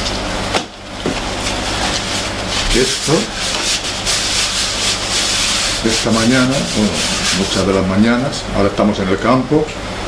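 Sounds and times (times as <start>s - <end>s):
orange scraping on citrus juicer: 1.4s - 8.0s.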